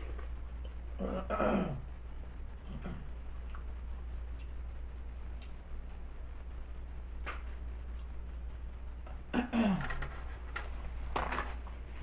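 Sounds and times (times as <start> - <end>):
steady low hum: 0.0 - 12.0
paper towel crinkling: 9.8 - 12.0.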